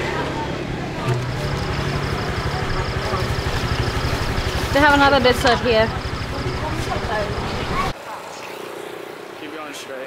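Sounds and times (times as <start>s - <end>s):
small motorbike engine idling: 1.0s - 7.9s.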